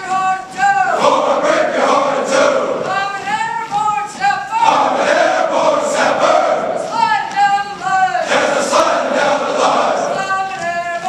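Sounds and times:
group singing in unison: 0.8s - 2.9s, 4.6s - 6.9s, 8.2s - 10.2s.

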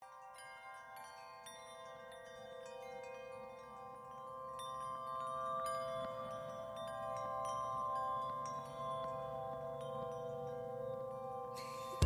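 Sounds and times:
soft chime-like bell tones: 0.0s - 12.0s.

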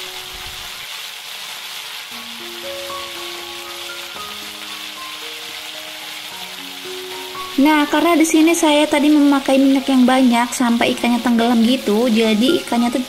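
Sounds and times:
fish deep-frying in oil: 0.0s - 13.0s
soft background music: 2.1s - 13.0s.

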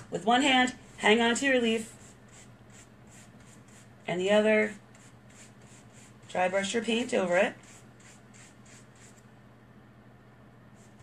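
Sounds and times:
paintbrush bristle strokes: 0.8s - 4.0s, 4.7s - 9.2s, 10.8s - 11.0s.

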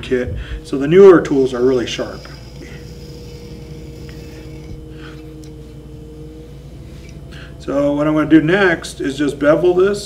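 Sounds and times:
potter's wheel motor hum: 0.0s - 10.0s.

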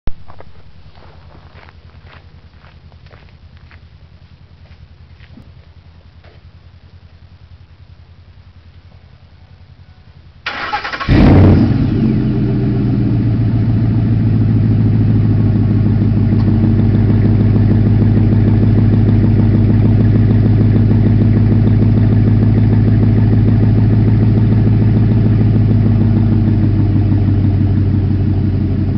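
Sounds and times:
truck engine idling: 0.7s - 28.9s.

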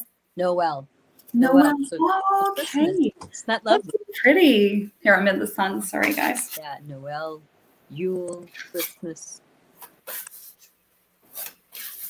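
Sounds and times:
cards being shuffled: 9.8s - 10.7s, 11.3s - 12.0s.

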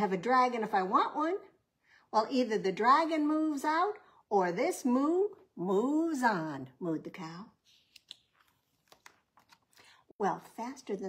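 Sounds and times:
book page turning: 7.6s - 10.1s.

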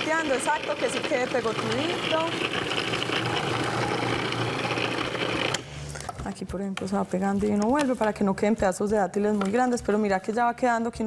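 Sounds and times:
food processor motor grinding: 0.0s - 6.0s.

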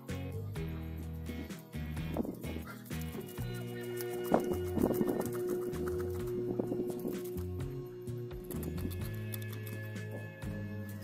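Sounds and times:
background music with sustained tones: 0.0s - 11.0s
knife scraping fish scales: 8.4s - 11.0s.

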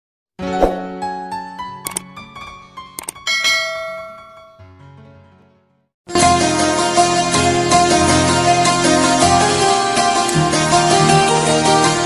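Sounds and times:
sharp click: 1.8s - 2.0s, 3.0s - 3.2s
bell ding: 3.3s - 4.8s.

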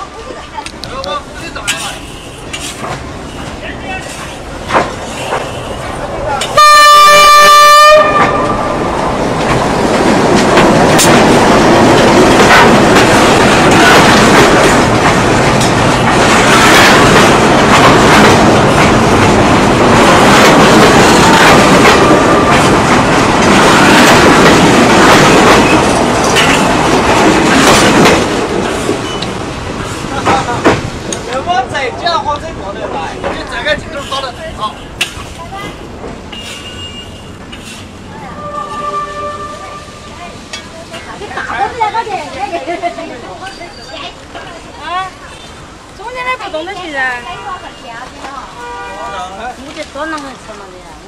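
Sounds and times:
train wheels running over rails: 0.2s - 7.2s, 7.9s - 39.0s
locomotive horn blast: 6.5s - 8.7s, 38.4s - 40.2s, 48.6s - 49.2s.

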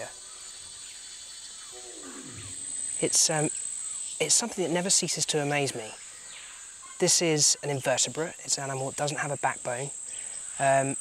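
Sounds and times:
rainforest insects droning: 0.0s - 11.0s
drawn-out descending call: 1.8s - 2.8s.

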